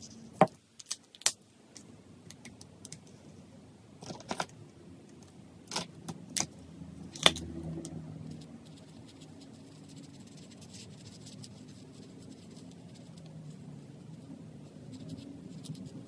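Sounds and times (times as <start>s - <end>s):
marker scratching on paper: 8.2s - 16.0s.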